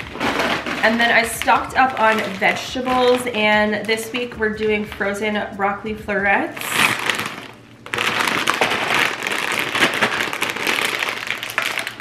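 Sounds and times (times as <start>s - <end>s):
plastic bag crinkling: 0.0s - 5.3s, 6.5s - 12.0s.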